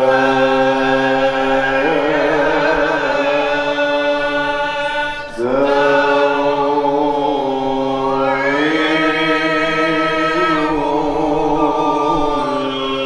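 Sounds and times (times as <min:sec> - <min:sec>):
men chanting devotional song: 0:00.0 - 0:13.0.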